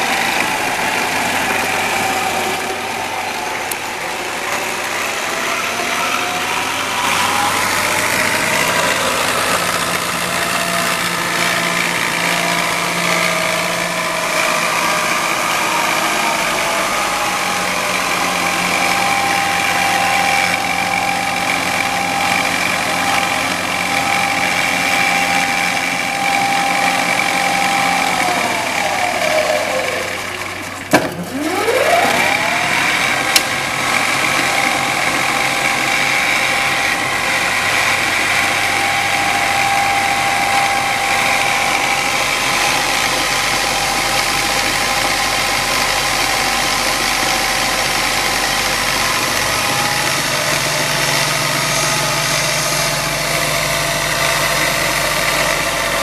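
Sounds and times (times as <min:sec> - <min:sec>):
milling machine spindle whine: 0:00.0 - 0:56.0.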